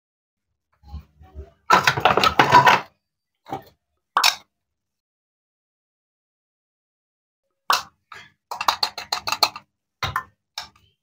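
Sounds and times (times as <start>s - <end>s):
wooden toy pieces knocking: 1.7s - 2.9s, 7.7s - 10.8s.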